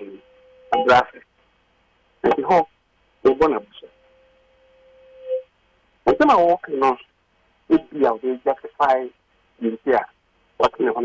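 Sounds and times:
steady hum-like tone: 0.0s - 11.0s.

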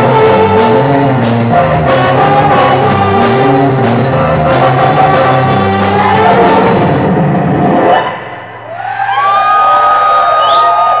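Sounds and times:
noise-rock band playing: 0.0s - 8.4s.

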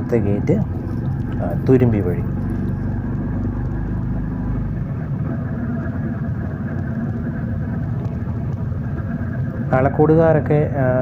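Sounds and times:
motorcycle engine droning: 0.0s - 11.0s.

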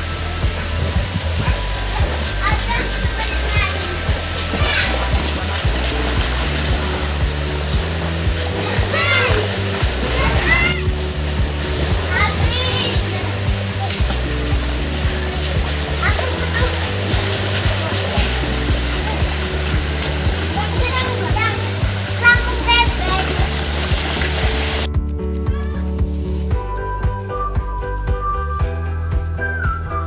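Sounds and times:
children shouting: 0.0s - 24.6s
children splashing in pool: 0.0s - 24.9s
music with steady beat: 0.0s - 30.0s.

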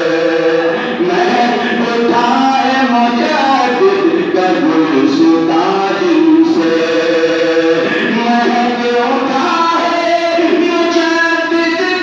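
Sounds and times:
man chanting through loudspeaker: 0.0s - 12.0s.

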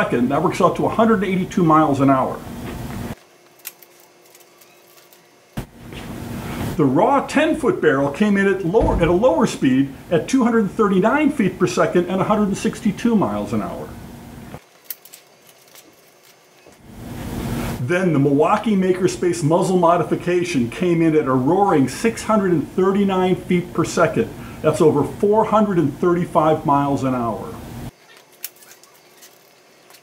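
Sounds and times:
low room hum: 0.0s - 30.0s.

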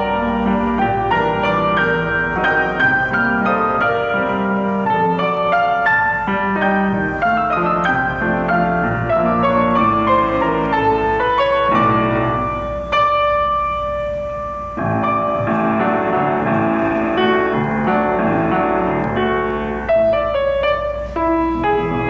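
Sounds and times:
grand piano duet: 0.0s - 22.0s.

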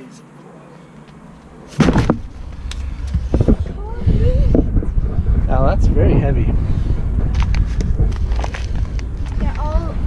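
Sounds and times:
steady low rumble: 1.1s - 10.0s.

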